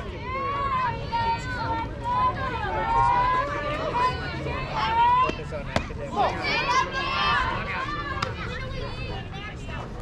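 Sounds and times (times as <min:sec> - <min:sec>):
voices shouting and chattering: 0:00.0 - 0:10.0.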